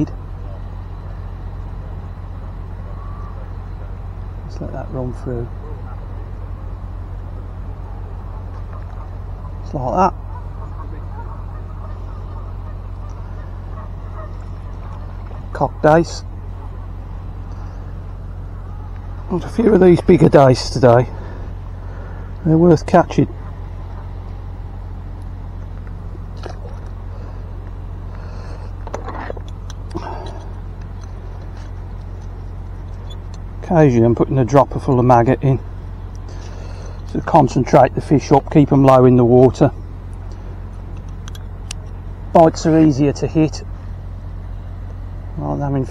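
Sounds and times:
steady low rumble: 0.0 - 45.9
geese honking: 2.6 - 3.9, 7.4 - 22.4, 23.3 - 25.0.

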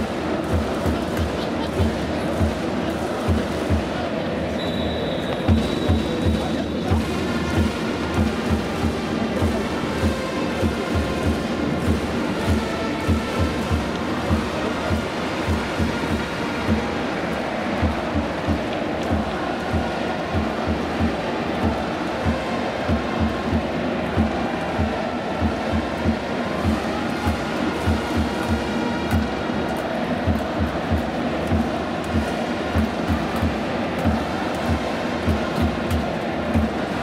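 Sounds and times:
steady drum beat: 0.0 - 4.6, 5.4 - 37.0
crowd chanting and cheering: 0.0 - 37.0.

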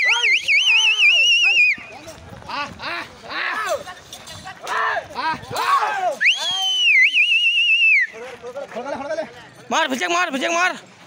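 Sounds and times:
loud wavering whistle: 6.2 - 8.1.

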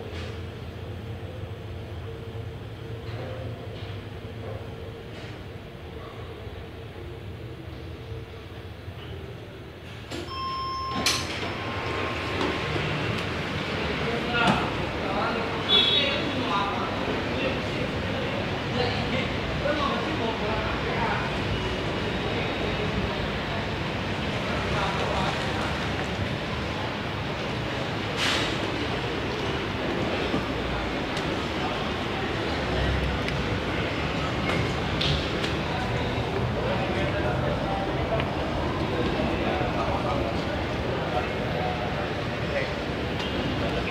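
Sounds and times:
elevator car humming: 6.4 - 15.0
elevator doors sliding open: 10.0 - 13.6
elevator arrival chime: 10.2 - 12.4.

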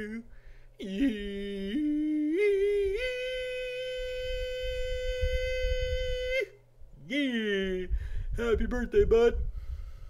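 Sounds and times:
person holding a long sung note: 0.0 - 6.6.

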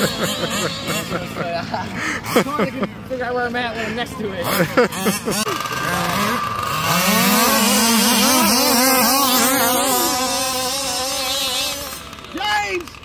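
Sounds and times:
small two-stroke engine revving: 0.0 - 2.8, 4.1 - 13.0.

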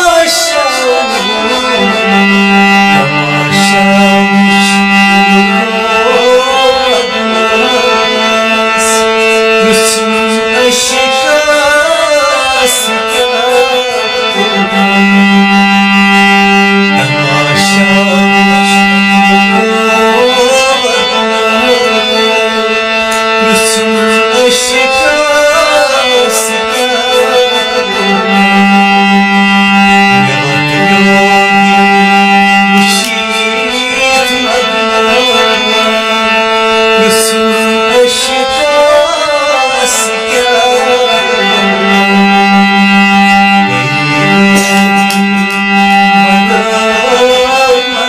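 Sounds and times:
harmonium playing: 0.0 - 48.0
man singing: 0.0 - 48.0.

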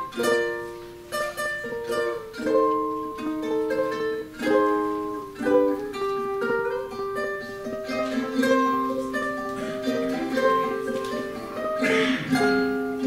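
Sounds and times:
ukulele fingerpicking: 0.0 - 13.0.

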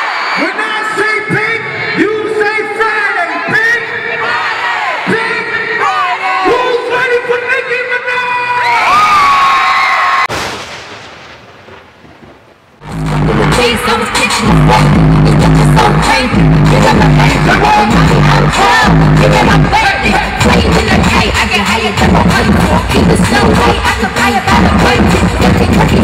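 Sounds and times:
arena crowd screaming: 0.0 - 7.0, 8.0 - 10.3, 13.3 - 14.9
hip-hop track with heavy bass: 12.8 - 26.0.

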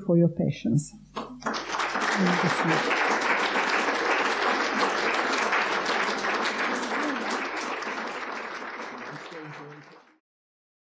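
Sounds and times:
audience applauding: 1.2 - 10.2.

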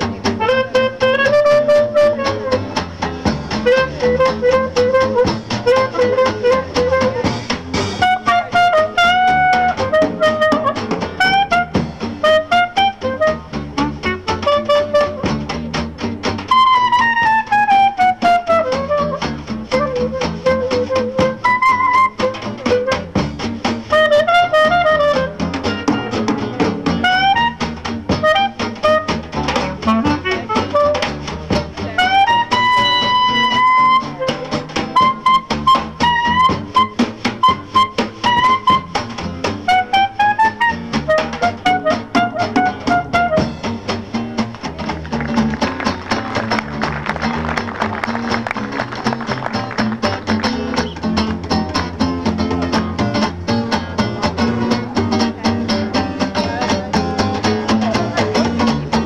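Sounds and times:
clarinet jazz solo: 0.0 - 59.0
jazz rhythm section: 0.0 - 59.0.

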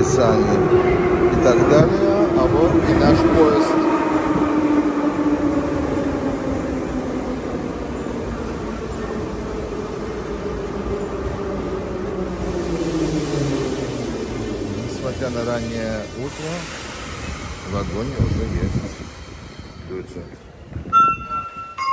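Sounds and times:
wheels rumbling on rail: 0.0 - 21.9.

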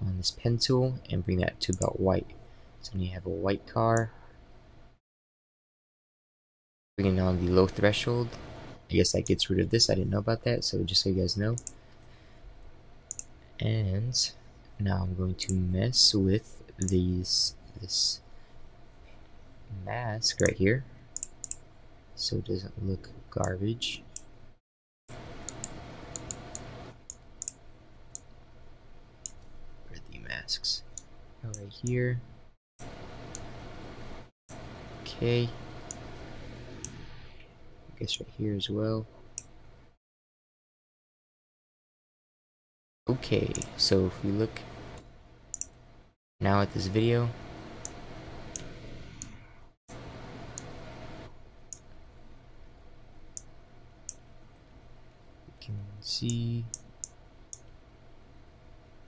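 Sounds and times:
low electrical hum: 0.0 - 5.0, 7.0 - 40.0, 43.1 - 59.0
computer mouse clicks: 1.7 - 2.0, 11.5 - 12.0, 13.1 - 13.3, 16.8 - 17.0, 21.2 - 21.6, 25.4 - 28.3, 36.8 - 37.1, 43.5 - 43.7, 44.9 - 45.8, 47.8 - 49.4.

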